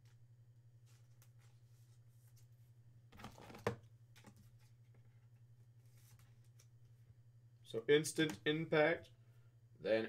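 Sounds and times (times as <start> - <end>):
low electrical hum: 0.0 - 10.0.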